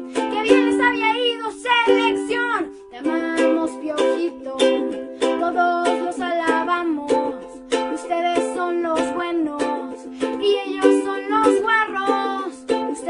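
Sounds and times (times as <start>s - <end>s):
girl singing: 0.0s - 13.0s
ukulele strumming: 0.0s - 13.0s.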